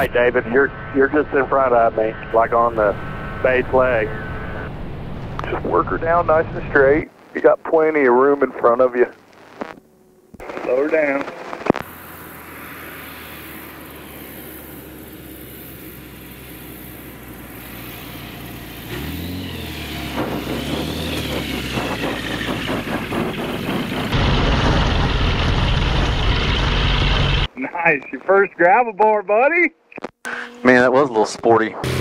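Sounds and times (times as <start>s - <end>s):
plane engine and propeller drone: 0.0s - 9.1s, 10.1s - 28.5s
rapid rattling on gravel: 20.1s - 25.0s.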